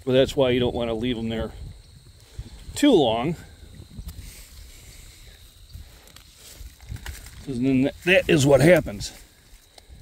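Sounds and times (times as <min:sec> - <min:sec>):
rustling of plants: 0:01.9 - 0:10.0.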